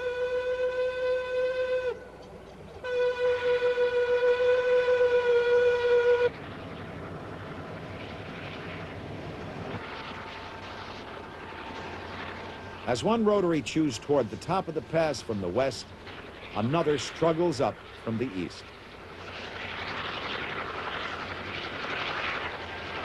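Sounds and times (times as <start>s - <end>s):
train horn blasts: 0.0s - 2.1s, 2.8s - 6.4s
snow plow rushing noise: 5.6s - 23.0s.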